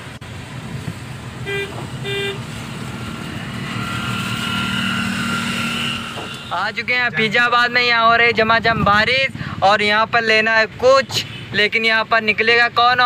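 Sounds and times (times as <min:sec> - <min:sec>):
steady whine: 0:00.0 - 0:08.7
engine and road noise: 0:00.0 - 0:13.0
car horn toots: 0:01.4 - 0:02.5, 0:05.6 - 0:06.9.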